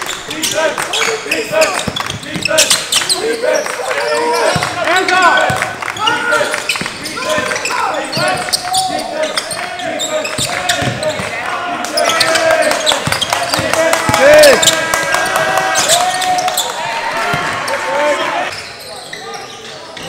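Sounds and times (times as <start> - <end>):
sneakers squeaking: 0.0 - 20.0
voices calling out: 0.0 - 20.0
basketball bouncing on wooden floor: 10.4 - 11.2, 13.0 - 14.8.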